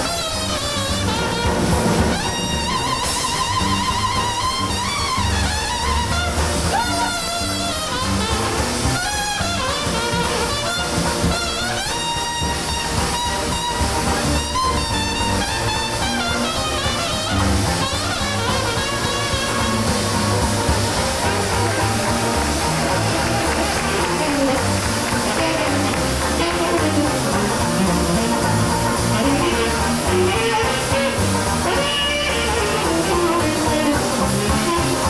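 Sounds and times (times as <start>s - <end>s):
cornet solo: 0.0s - 35.0s
jazz band playing: 0.0s - 35.0s.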